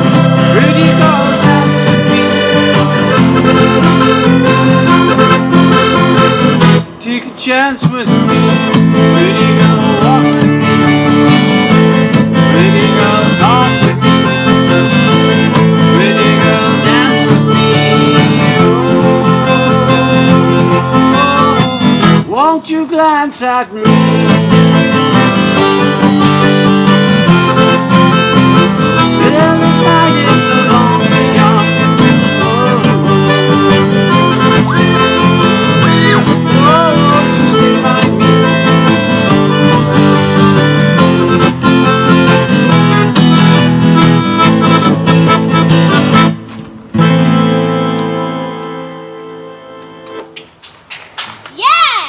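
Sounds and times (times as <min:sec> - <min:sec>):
piano accordion: 0:00.0 - 0:07.1, 0:08.0 - 0:22.4, 0:23.8 - 0:50.4
acoustic guitar: 0:00.0 - 0:51.1.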